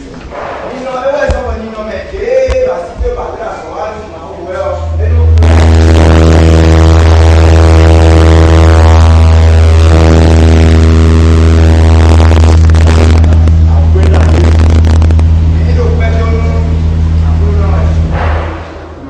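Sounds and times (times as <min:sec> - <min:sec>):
public-address system hum: 0:00.0 - 0:18.2.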